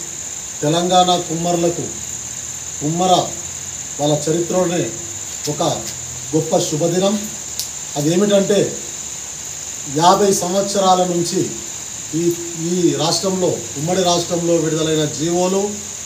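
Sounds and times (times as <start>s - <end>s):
high-pitched whine: 0.0s - 16.0s
man speaking: 0.6s - 2.0s, 2.8s - 3.4s, 4.0s - 7.4s, 8.0s - 8.9s, 9.8s - 15.9s.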